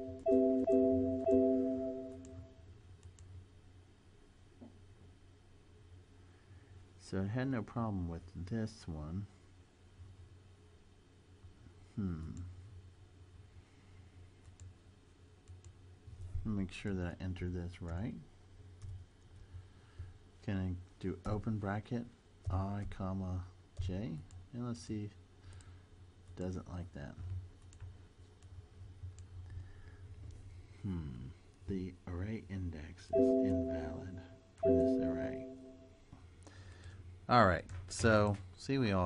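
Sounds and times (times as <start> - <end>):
computer alert chime: 0.0 - 2.5, 33.2 - 35.9
low steady hum: 0.0 - 39.0
faint computer mouse clicks: 3.0 - 3.3.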